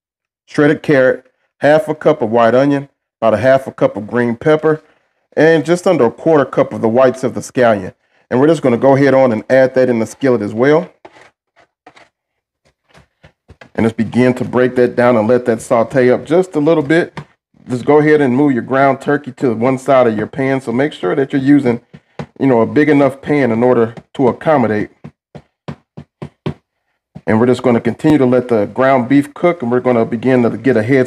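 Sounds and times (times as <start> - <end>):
plastic spatula scraping pan: 10.0 - 18.0, 20.8 - 27.6
spatula scraping a skillet: 10.9 - 13.8.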